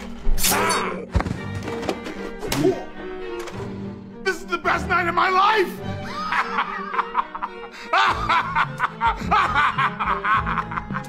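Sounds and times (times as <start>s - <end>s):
film score music: 0.0s - 11.0s
man laughing: 6.0s - 11.0s.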